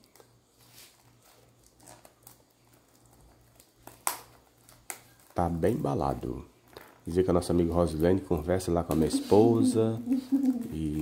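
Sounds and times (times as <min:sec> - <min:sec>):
package being opened: 0:00.0 - 0:11.0.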